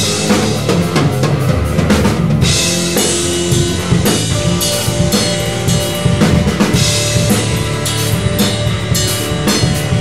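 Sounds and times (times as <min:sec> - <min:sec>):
live instrumental rock band: 0:00.0 - 0:10.0.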